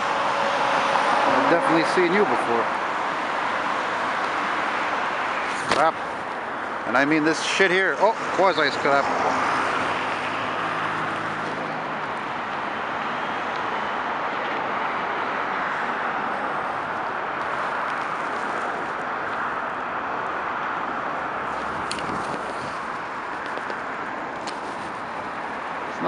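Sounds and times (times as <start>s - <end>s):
highway traffic: 0.0s - 26.0s.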